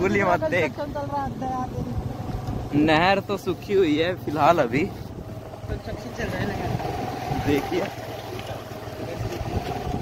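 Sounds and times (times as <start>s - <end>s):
motorbike engine humming: 0.0s - 10.0s
road noise: 0.0s - 10.0s.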